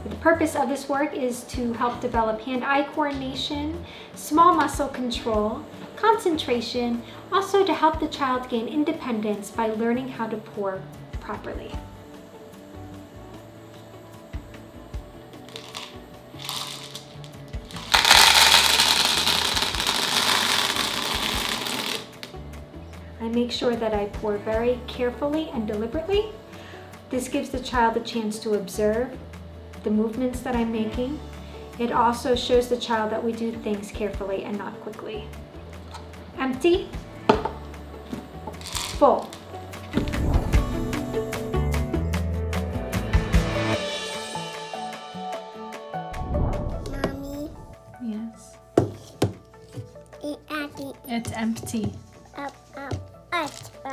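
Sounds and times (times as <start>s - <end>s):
soft background music: 0.0s - 53.9s
plastic beads rattling into cup: 15.4s - 22.4s, 38.6s - 39.4s
plastic cup knocking on wood: 37.3s - 38.9s, 48.8s - 49.4s, 52.9s - 53.1s.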